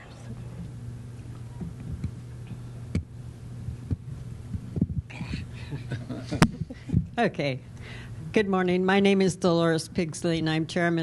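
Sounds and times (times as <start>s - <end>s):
low electrical hum: 0.0s - 11.0s
microphone handling thumps: 1.6s - 5.2s, 6.4s - 7.2s.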